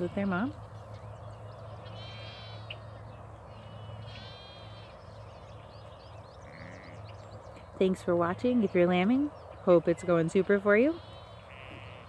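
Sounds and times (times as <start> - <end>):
steady low background noise: 0.0 - 12.0
lamb bleating: 1.9 - 2.7, 4.1 - 4.9, 6.4 - 7.0, 11.0 - 12.0.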